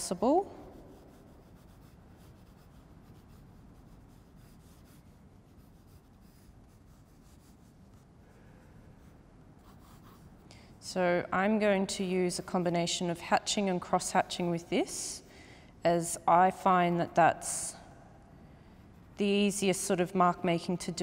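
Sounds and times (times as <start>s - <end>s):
low room hum: 0.0s - 21.0s
pencil scratching on paper: 0.6s - 8.1s, 9.0s - 10.3s.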